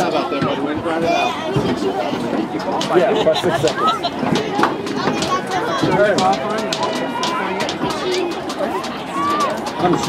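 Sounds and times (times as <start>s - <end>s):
background chatter: 0.0s - 10.0s
spectators talking and laughing: 0.0s - 10.0s.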